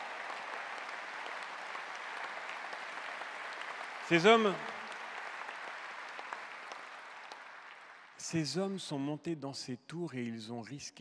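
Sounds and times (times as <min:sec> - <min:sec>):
audience applauding: 0:00.0 - 0:08.6.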